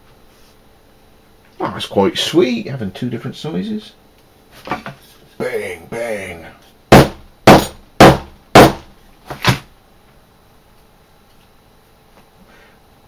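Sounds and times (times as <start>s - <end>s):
hammer striking rivet on anvil: 6.9s - 8.8s.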